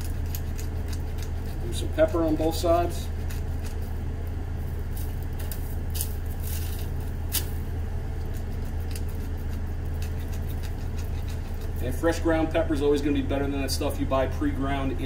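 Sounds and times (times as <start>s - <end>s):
pepper mill crackling: 0.0s - 12.5s
steady low hum: 0.0s - 15.0s.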